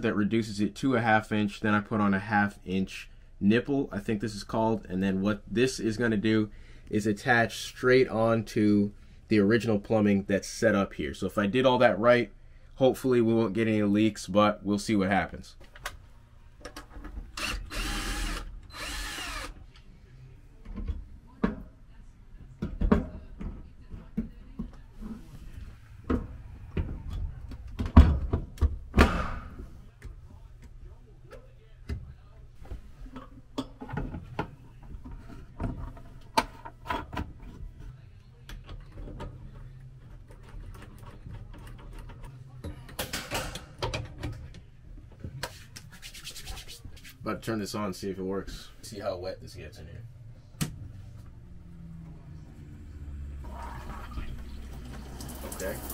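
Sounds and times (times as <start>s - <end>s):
cordless drill running: 17.4s - 19.6s.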